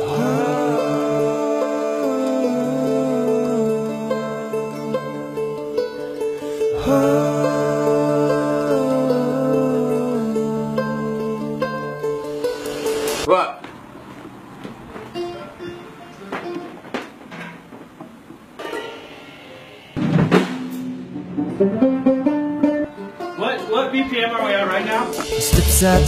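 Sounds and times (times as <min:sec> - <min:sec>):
band playing: 0:00.0 - 0:13.3, 0:20.0 - 0:26.0.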